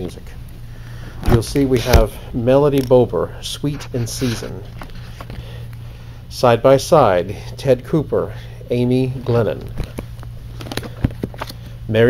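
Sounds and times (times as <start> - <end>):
steady low hum: 0.0 - 12.0
paper and card covers rustling: 3.7 - 5.4, 9.3 - 11.7.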